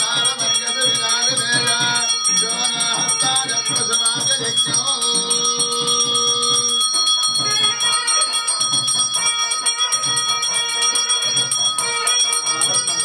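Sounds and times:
bells ringing rapidly: 0:00.0 - 0:13.0
music with low beat: 0:00.0 - 0:13.0.

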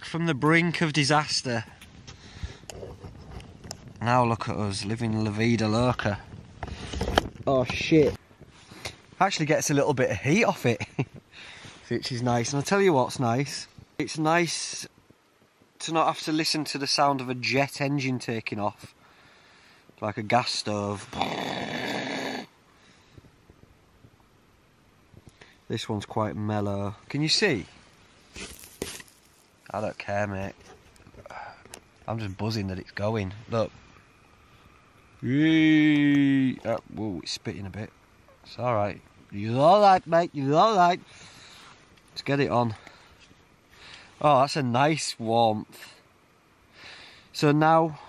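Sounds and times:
man laughing: 0:10.6 - 0:11.2.

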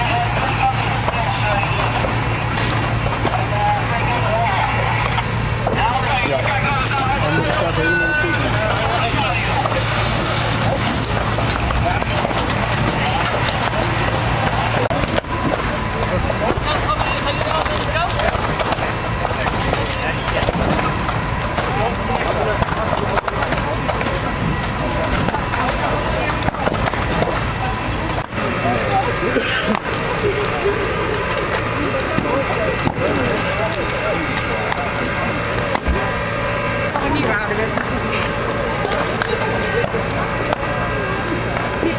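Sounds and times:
low engine hum: 0:00.0 - 0:41.9
voices talking indistinctly: 0:00.0 - 0:41.9.

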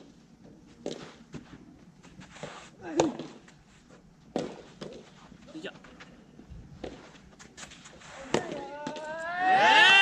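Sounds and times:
racket hitting tennis ball: 0:04.3 - 0:05.0, 0:08.2 - 0:09.1
players shouting: 0:08.3 - 0:10.0.

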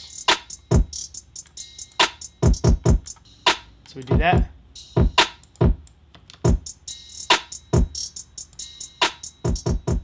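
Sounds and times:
hi-hat ticks: 0:00.0 - 0:10.0.

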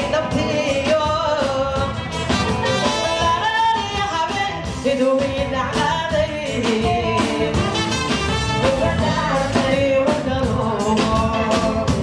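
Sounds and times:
woman singing: 0:00.0 - 0:02.2, 0:02.8 - 0:12.0
drums: 0:00.0 - 0:12.0
electric guitar: 0:00.0 - 0:12.0
keyboard: 0:00.0 - 0:12.0
trumpet: 0:01.8 - 0:03.8, 0:07.4 - 0:09.4.

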